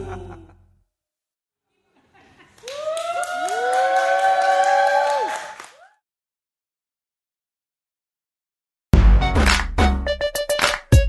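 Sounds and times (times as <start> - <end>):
voices cheering together: 2.6 - 6.0
hand claps: 9.4 - 9.8, 10.6 - 11.0.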